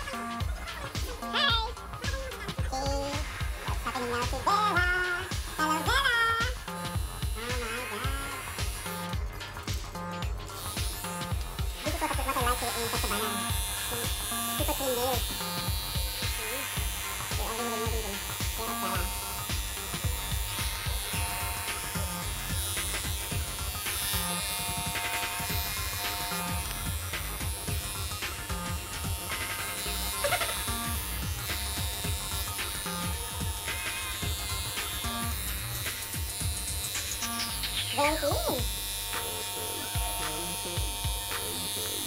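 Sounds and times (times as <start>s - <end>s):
electric clippers buzzing: 0.0s - 42.0s.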